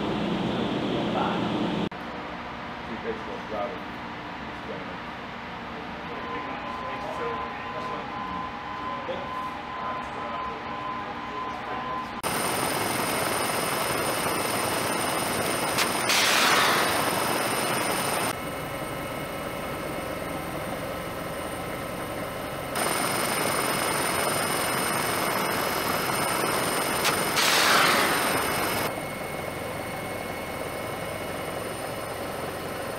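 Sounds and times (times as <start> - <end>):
helicopter high whining: 12.2 - 32.9
missile launch crack: 15.8 - 17.1.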